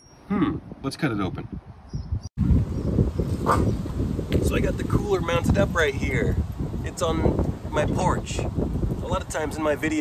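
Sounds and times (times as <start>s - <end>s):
wind noise on microphone: 0.0s - 10.0s.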